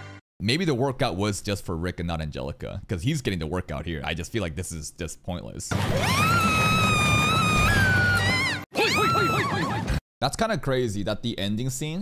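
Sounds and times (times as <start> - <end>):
woman screaming: 5.9 - 10.0.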